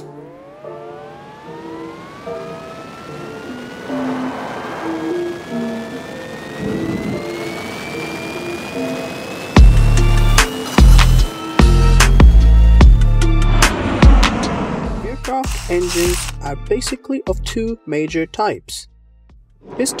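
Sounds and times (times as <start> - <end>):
jet engine spool-up whine: 0.0 - 16.4
background music: 0.0 - 20.0.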